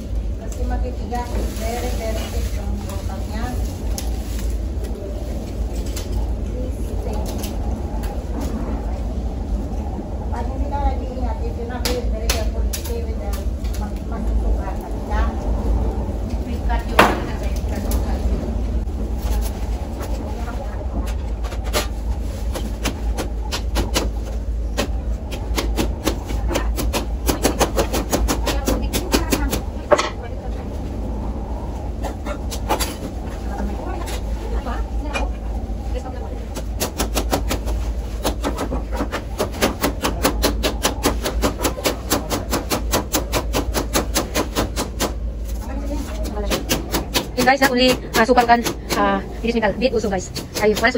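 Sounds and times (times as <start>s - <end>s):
voices talking: 0.3s - 21.8s, 24.4s - 36.8s, 45.1s - 50.9s.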